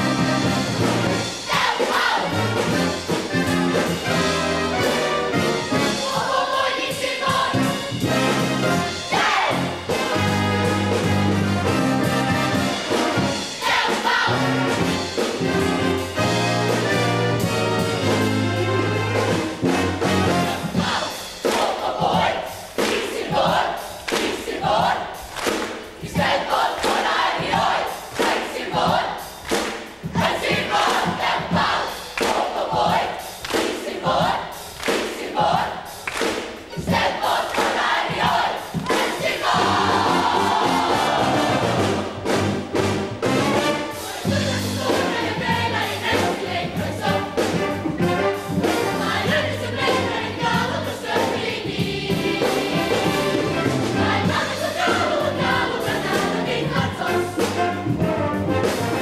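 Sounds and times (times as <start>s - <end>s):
brass band held chord: 0.0s - 1.6s, 2.2s - 6.2s, 7.5s - 21.2s, 39.6s - 51.3s, 52.1s - 59.0s
choir singing: 0.0s - 42.3s, 43.5s - 59.0s
choir shouting in unison: 1.4s - 2.6s, 9.0s - 9.9s, 36.8s - 42.0s
hand clapping: 24.1s - 24.5s, 25.3s - 25.9s, 29.4s - 30.0s, 32.2s - 32.6s, 33.4s - 33.9s, 34.8s - 35.3s, 36.0s - 36.6s, 37.5s - 37.8s.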